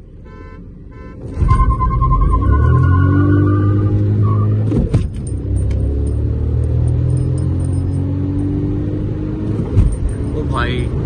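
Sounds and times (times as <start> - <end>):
car engine accelerating: 1.2 - 11.0.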